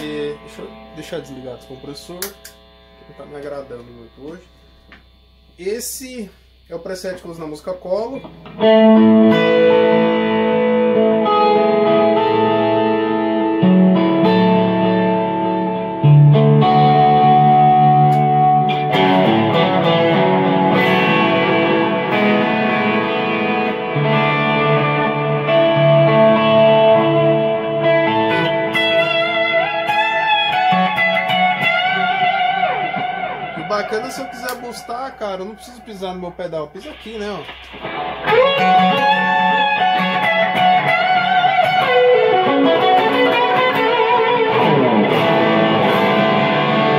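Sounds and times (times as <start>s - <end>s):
electric guitar sustained chords: 0.0s - 46.9s.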